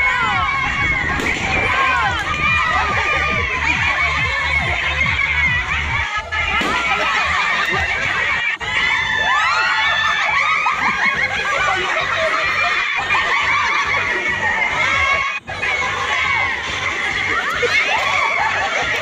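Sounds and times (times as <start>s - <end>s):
group shouting and cheering: 0.0s - 19.0s.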